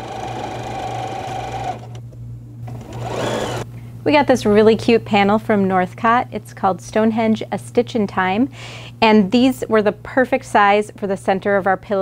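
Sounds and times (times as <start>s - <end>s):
sewing machine stitching: 0.0s - 2.0s, 2.7s - 3.6s.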